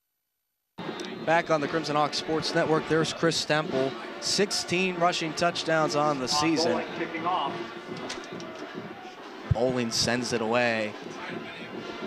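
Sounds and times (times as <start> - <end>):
stadium crowd hubbub: 0.8 - 12.0
man's voice: 1.1 - 7.6, 9.5 - 12.0.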